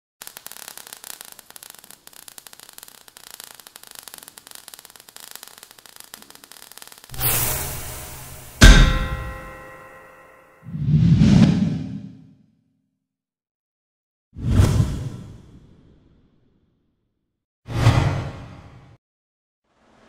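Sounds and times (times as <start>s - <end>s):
faint crackling: 0.2s - 7.3s
loud metallic clang: 7.1s - 10.7s.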